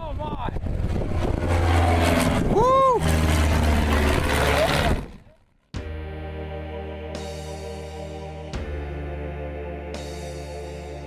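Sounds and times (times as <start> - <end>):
propeller plane flying past: 0.0 - 5.6
ambient music: 5.7 - 11.0.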